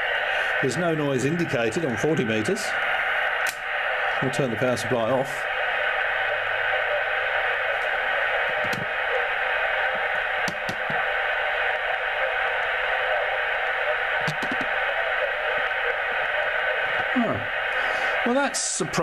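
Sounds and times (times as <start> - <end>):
radio band hiss: 0.0 - 19.0
faint radio clicks: 3.3 - 3.7, 6.2 - 17.1.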